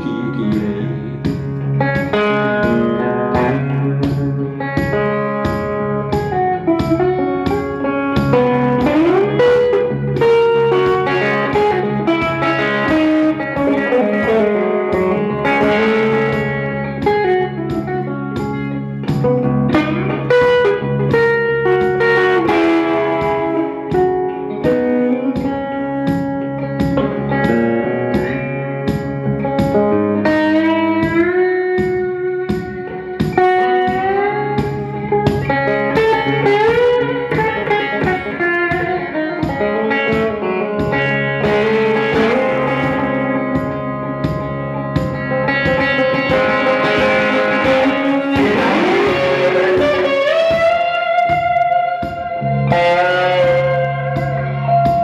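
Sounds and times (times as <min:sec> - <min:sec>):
electric guitar solo: 0:00.0 - 0:55.0
steady drum beat: 0:00.0 - 0:55.0.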